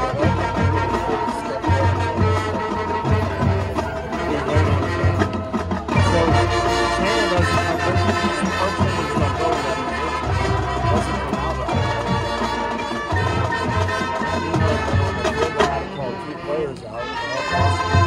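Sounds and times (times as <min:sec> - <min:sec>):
pulsing low drum line: 0:00.0 - 0:16.3
marching band playing: 0:00.0 - 0:18.0.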